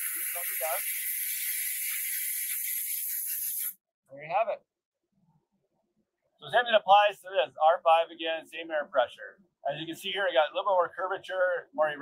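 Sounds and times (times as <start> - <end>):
compressed air blow gun hissing: 0.0 - 3.8.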